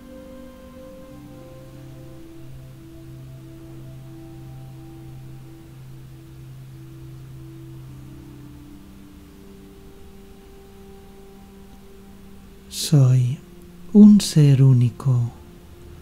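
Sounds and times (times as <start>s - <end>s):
soft meditation music: 0.0s - 16.0s.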